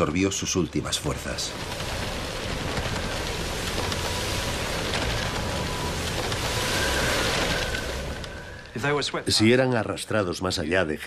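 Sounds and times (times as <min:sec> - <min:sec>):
water rushing: 0:00.0 - 0:11.0
wind rushing: 0:01.3 - 0:09.2.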